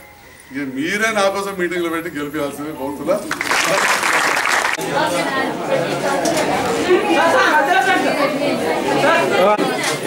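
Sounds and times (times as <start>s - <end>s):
overlapping chatter of voices: 0.4s - 10.0s.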